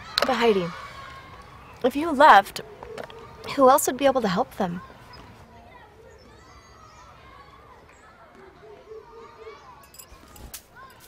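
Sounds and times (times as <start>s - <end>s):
distant children playing: 0.0s - 11.0s.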